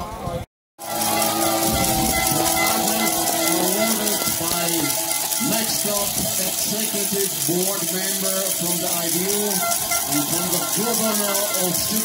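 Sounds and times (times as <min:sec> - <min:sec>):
crowd noise: 0:00.0 - 0:12.0
announcer over public address: 0:00.8 - 0:12.0.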